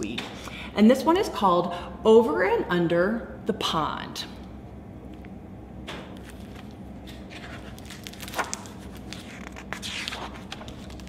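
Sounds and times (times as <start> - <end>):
low room hum: 0.0 - 11.0
book pages rustling: 6.2 - 11.0.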